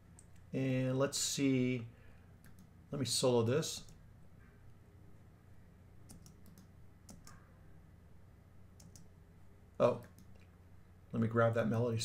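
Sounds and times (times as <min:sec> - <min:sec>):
faint computer clicks: 0:06.1 - 0:07.4.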